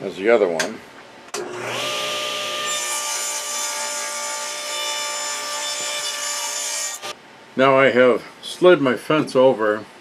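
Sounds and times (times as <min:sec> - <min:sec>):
table saw motor whine: 0:01.4 - 0:03.5.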